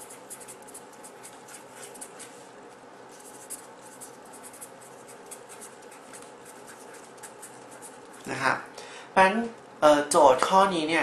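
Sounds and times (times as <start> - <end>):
pen scratching on surface: 0.0 - 2.4, 3.1 - 8.3
low room hum: 0.0 - 11.0.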